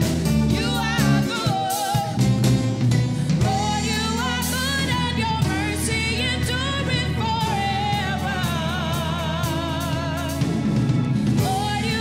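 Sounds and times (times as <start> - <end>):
drums: 0.0 - 12.0
instrumental accompaniment: 0.0 - 12.0
woman singing gospel solo: 0.2 - 2.4, 3.4 - 12.0.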